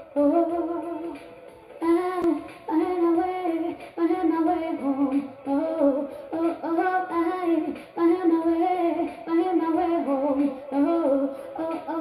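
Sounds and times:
music: 0:00.0 - 0:12.0
woman singing: 0:00.0 - 0:12.0.

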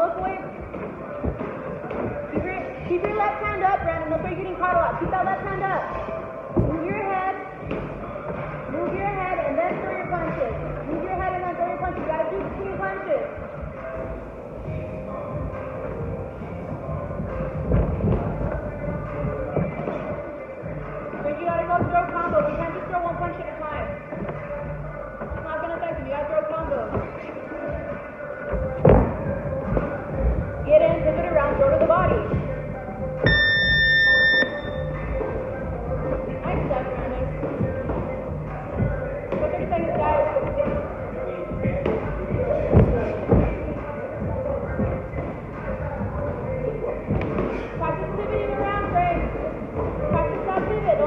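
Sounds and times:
voices echoing: 0:00.0 - 0:17.6, 0:18.2 - 0:51.0
background music: 0:00.0 - 0:51.0
electronic beep: 0:33.2 - 0:35.0.

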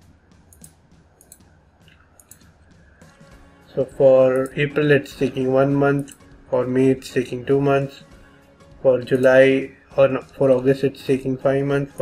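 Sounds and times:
computer mouse clicks: 0:00.5 - 0:02.5.

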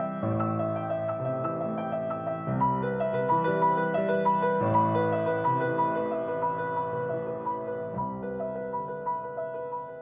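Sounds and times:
grand piano playing: 0:00.0 - 0:10.0.

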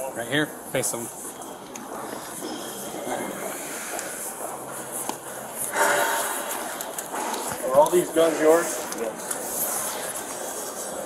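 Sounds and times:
faint voices: 0:00.0 - 0:11.0.

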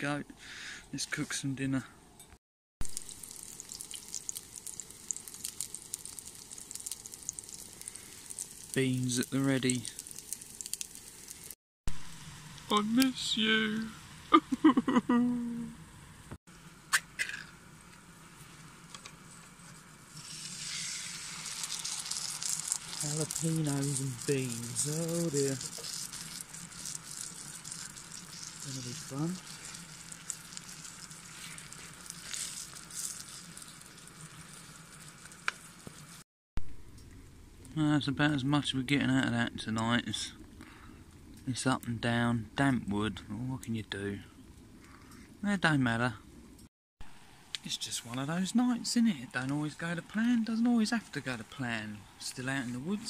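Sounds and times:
low stove hum: 0:00.4 - 0:53.0
patties sizzling in a frying pan: 0:02.8 - 0:11.6, 0:20.1 - 0:36.2.

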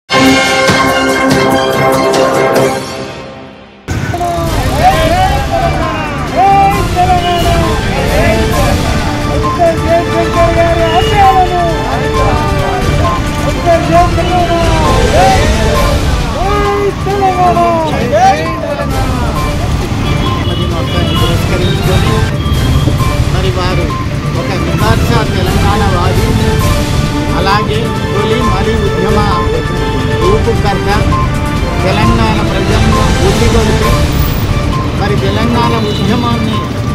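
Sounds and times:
low rumble of street traffic: 0:03.9 - 0:36.9
men shouting slogans: 0:04.2 - 0:19.3.

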